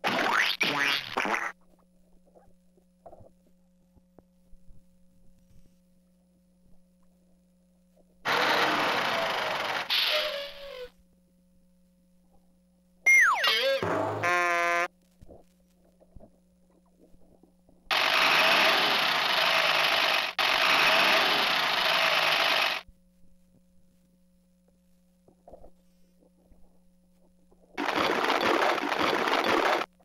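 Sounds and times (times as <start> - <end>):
short buzzy tone: 13.1 - 14.9.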